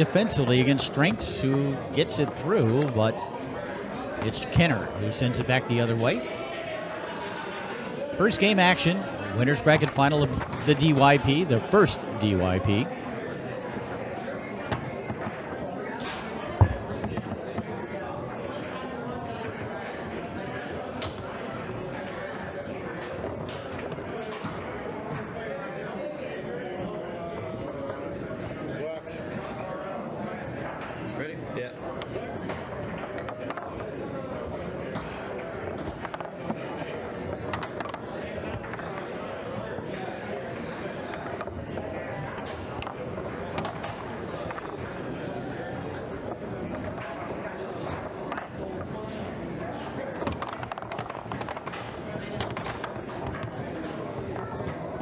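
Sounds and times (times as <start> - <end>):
murmur of chatter: 0.0 - 55.0
foosball ball and rods clacking: 35.0 - 39.2, 41.1 - 45.0, 50.1 - 54.8.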